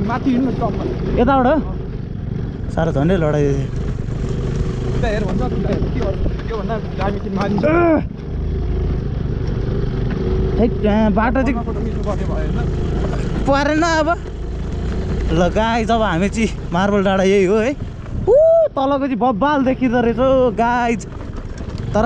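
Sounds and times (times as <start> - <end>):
scooter motor rumbling: 0.0 - 22.0.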